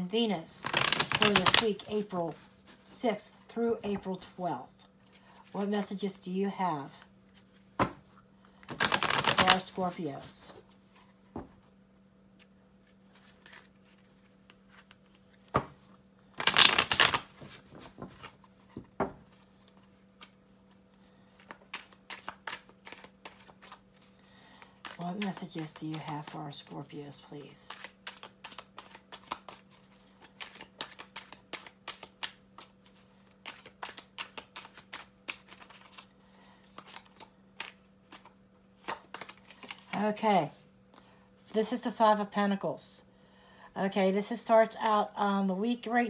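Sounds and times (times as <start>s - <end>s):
cards being shuffled: 0.6s - 2.9s, 7.3s - 11.6s, 12.3s - 20.8s, 21.4s - 24.1s, 24.7s - 26.8s, 27.5s - 40.2s.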